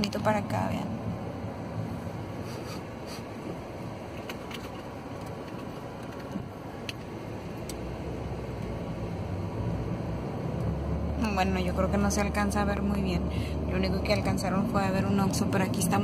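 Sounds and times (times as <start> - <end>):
car engine and tyre noise: 0.0 - 16.0.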